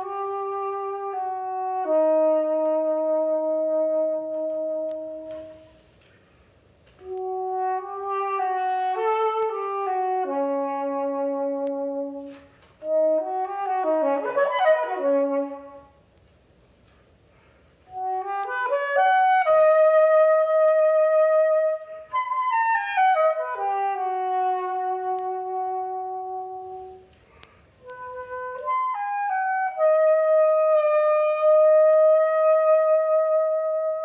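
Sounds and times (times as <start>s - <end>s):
soprano saxophone playing: 0.0s - 6.0s, 6.9s - 16.1s, 17.8s - 34.0s.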